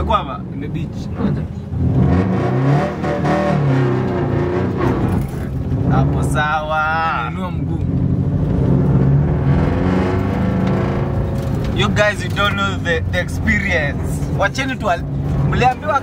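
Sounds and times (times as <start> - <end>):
car engine revving: 0.0 - 16.0.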